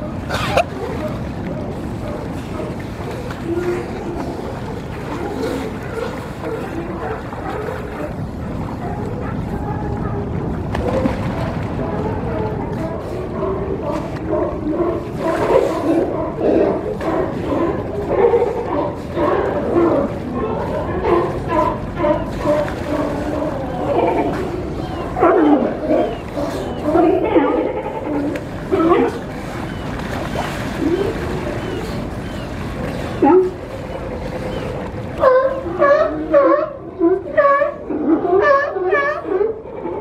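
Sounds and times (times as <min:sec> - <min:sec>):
sea lions barking and groaning: 0:00.0 - 0:40.0.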